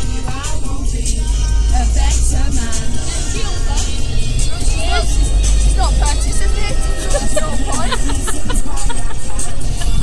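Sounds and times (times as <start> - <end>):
car stereo music with heavy bass: 0.0 - 10.0
people's voices: 0.0 - 10.0.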